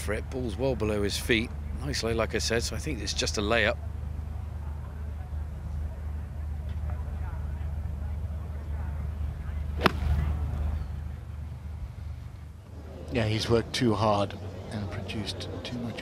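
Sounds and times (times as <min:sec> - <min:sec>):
low outdoor rumble: 0:00.0 - 0:13.4
golf club striking ball from sand: 0:09.8 - 0:10.7.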